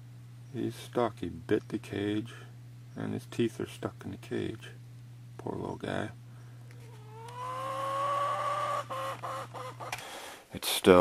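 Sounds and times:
animal whining cry: 6.9s - 9.9s.

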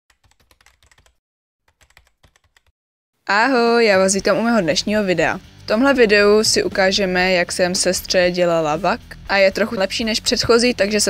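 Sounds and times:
rapid keyboard typing clicks: 0.1s - 2.7s.

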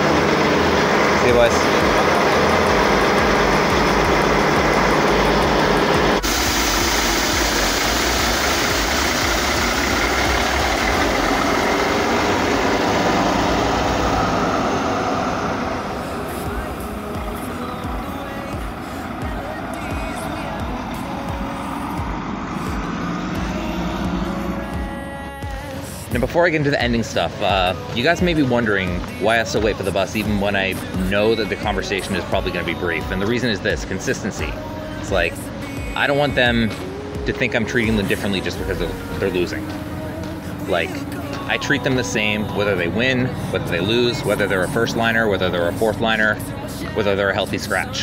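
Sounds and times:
diesel bus engine idling: 0.0s - 48.0s.

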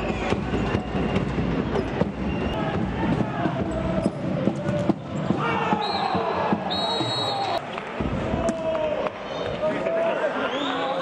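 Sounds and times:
players shouting: 2.5s - 11.0s.

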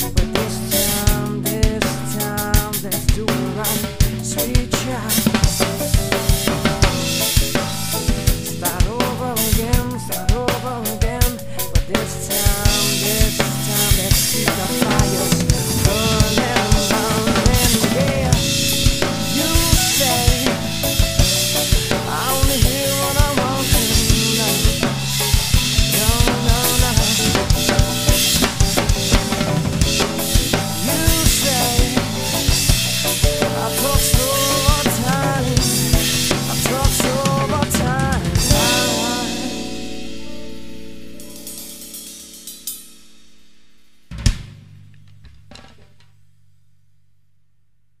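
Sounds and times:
acoustic drum kit playing: 0.0s - 46.0s
rock backing track: 0.0s - 46.3s.

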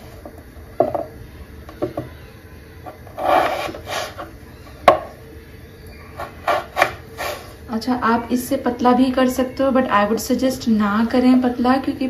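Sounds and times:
knife cutting potato: 2.9s - 5.0s, 6.2s - 7.5s.

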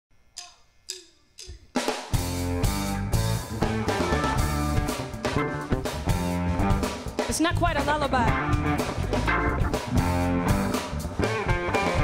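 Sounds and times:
rock band playing: 1.8s - 12.0s.

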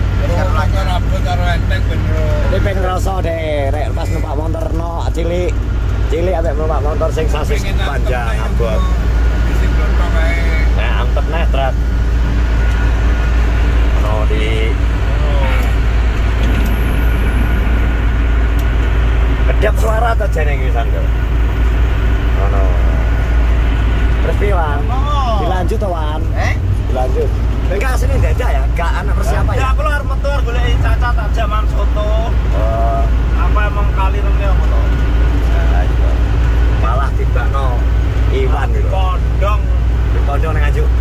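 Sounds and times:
car engine and road noise: 0.0s - 41.0s
people talking: 0.1s - 11.8s, 13.9s - 15.8s, 19.5s - 21.3s, 22.3s - 23.2s, 24.2s - 36.2s, 36.8s - 41.0s.

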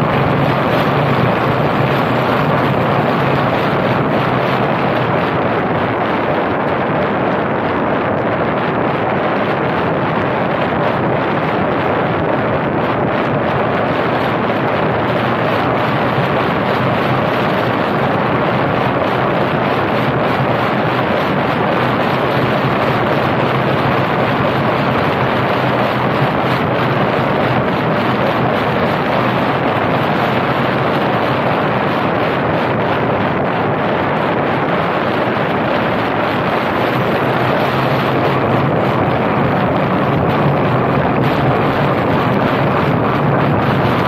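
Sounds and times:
tyre and road noise: 0.0s - 44.0s
wind rushing over microphone: 0.0s - 44.0s.

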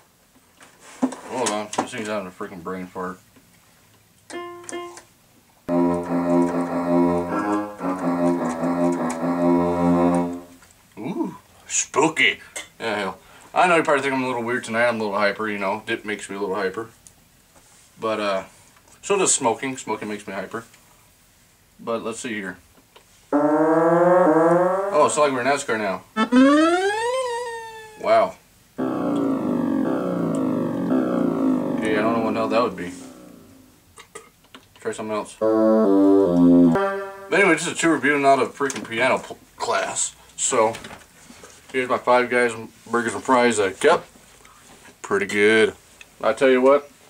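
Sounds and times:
electronic keyboard chords: 4.3s - 5.0s, 5.7s - 10.6s, 23.3s - 25.5s, 26.2s - 28.0s, 28.8s - 33.7s, 35.4s - 37.8s
synthesized rising tone: 5.7s - 10.6s, 23.4s - 25.4s, 26.2s - 28.0s, 28.8s - 33.7s, 35.4s - 37.6s.

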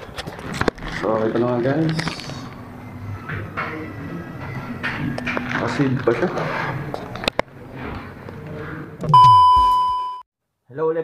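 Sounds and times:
faint room murmur: 0.1s - 9.1s
loud high electronic beep: 9.1s - 10.2s.

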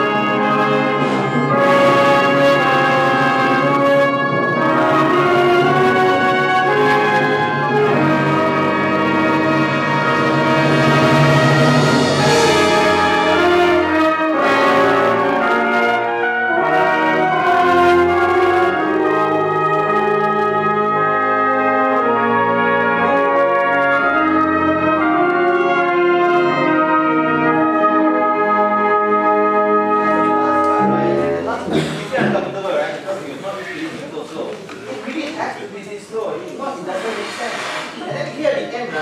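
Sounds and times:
concert band playing: 0.0s - 34.0s.

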